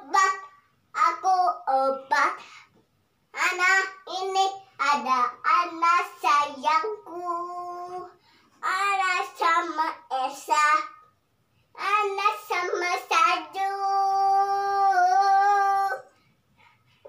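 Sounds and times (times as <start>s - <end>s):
young girl singing: 0.0s - 16.2s.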